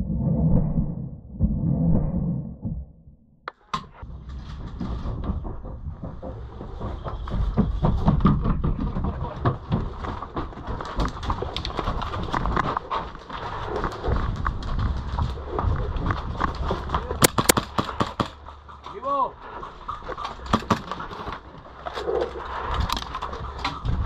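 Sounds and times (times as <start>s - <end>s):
steady low rumble: 0.0s - 7.9s.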